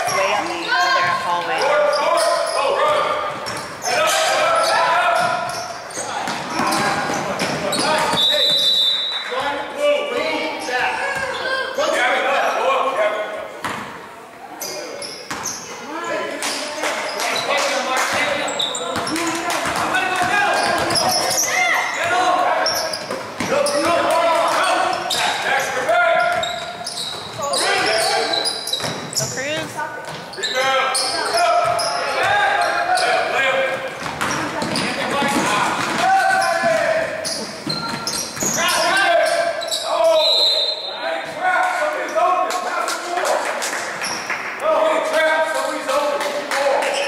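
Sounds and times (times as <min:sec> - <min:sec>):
voices calling out in gym: 0:00.0 - 0:47.0
basketball bouncing on wooden floor: 0:34.0 - 0:36.8.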